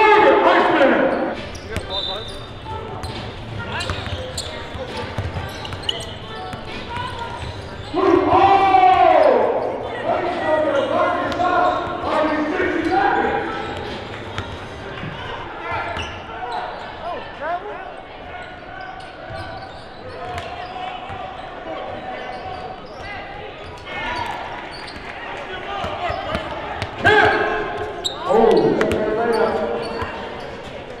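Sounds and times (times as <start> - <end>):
voices echoing in a hall: 0.0 - 31.0
loud shout: 8.0 - 11.7, 27.0 - 29.8.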